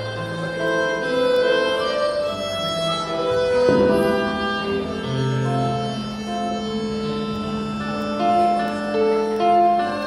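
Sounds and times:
low accompaniment notes: 0.0 - 10.0
violin playing held notes: 0.0 - 10.0.

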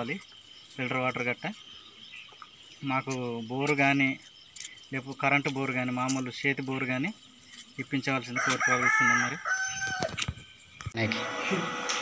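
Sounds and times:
rooster crowing: 8.3 - 10.3.

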